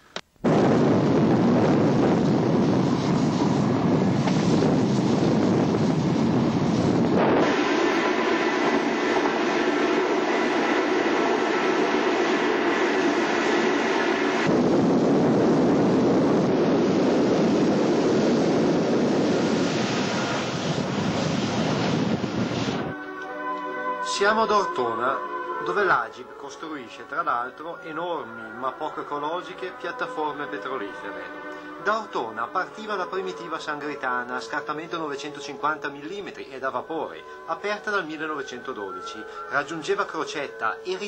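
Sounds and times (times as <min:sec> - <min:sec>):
electric railcar running at speed: 0:01.5 - 0:22.9.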